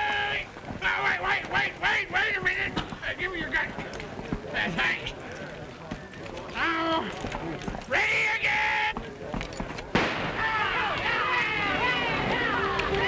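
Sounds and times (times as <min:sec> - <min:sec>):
gunshot: 0:09.9 - 0:10.8
crowd yelling and whooping: 0:10.4 - 0:13.0
men shouting: 0:10.4 - 0:13.0.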